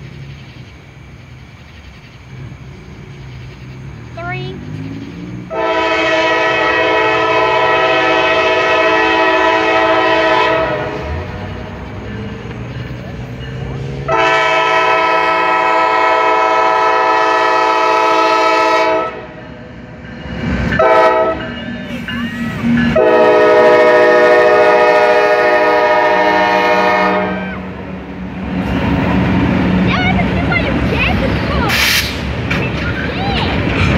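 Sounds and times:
low locomotive engine drone: 0.0s - 33.9s
locomotive air horn blasts: 5.5s - 11.3s, 14.0s - 19.4s, 20.8s - 22.1s, 22.9s - 27.7s.

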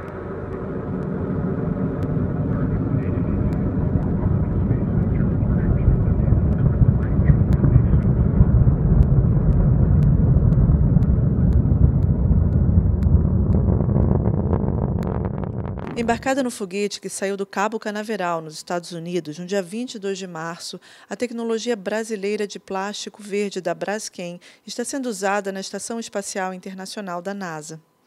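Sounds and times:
distant rocket engine rumble: 0.0s - 16.6s.

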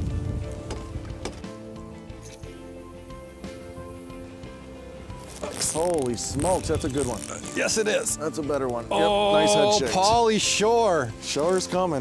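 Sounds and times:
wind rumble on microphone: 0.0s - 1.4s
background music of long held notes: 0.0s - 12.0s.

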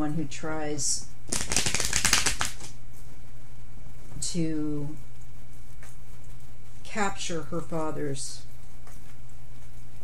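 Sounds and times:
cards being shuffled: 1.3s - 2.8s.

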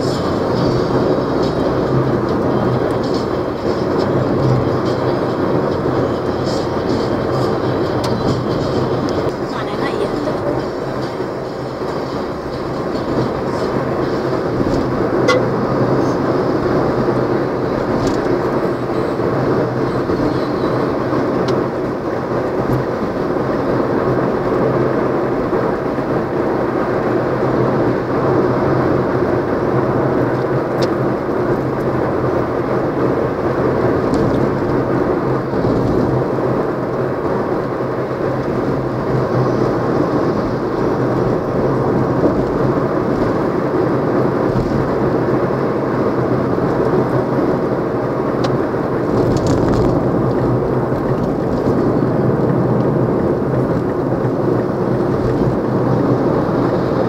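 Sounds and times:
bus engine and road noise: 0.0s - 57.0s.

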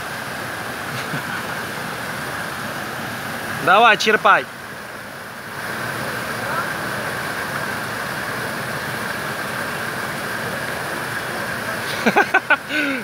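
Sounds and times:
running water rushing: 0.0s - 13.0s.

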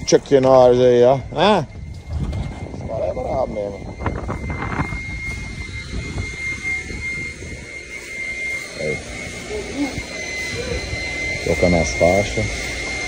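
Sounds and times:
high-pitched whine: 0.0s - 13.0s
machine low drone: 0.0s - 13.0s.

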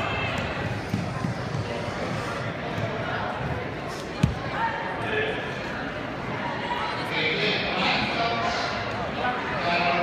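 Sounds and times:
murmur of echoing voices: 0.0s - 10.0s.

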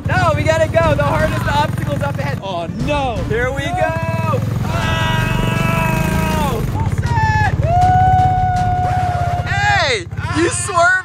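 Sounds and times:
off-road vehicles rumbling and rattling: 0.0s - 11.0s
person shouting: 3.7s - 11.0s.

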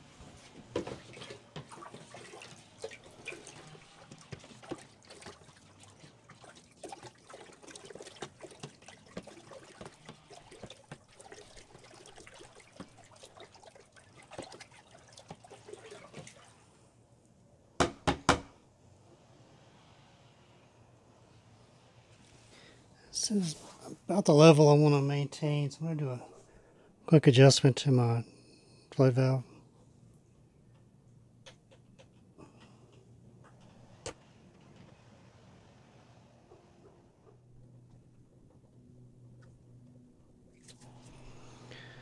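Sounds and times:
liquid sloshing and splashing: 0.2s - 17.0s, 40.4s - 42.0s.

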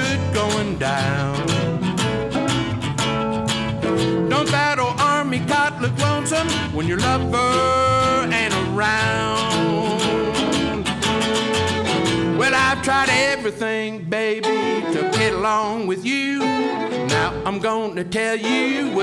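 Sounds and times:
man singing long notes: 0.0s - 2.2s, 4.3s - 11.6s, 12.3s - 19.0s
fiddle bowing: 0.0s - 19.0s
strummed guitars: 0.0s - 19.0s.

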